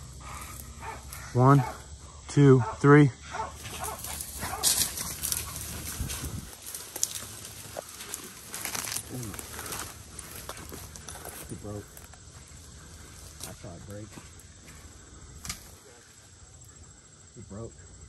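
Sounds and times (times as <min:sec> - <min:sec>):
grass and brush rustling: 0:00.0 - 0:02.2, 0:03.4 - 0:17.3
faint voices: 0:06.7 - 0:17.9.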